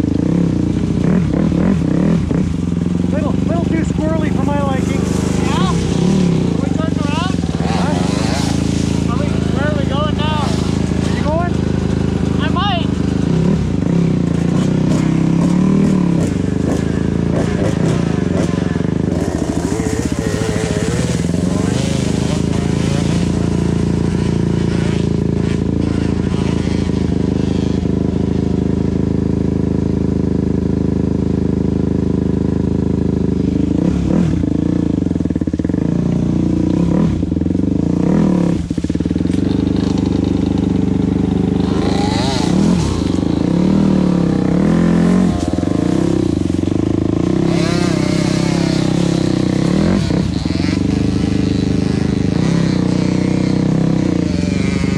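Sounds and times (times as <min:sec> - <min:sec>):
dirt bike engines idling: 0:00.0 - 0:54.9
dirt bike pulling away: 0:00.0 - 0:54.9
dirt bike riding off on gravel: 0:00.0 - 0:54.9.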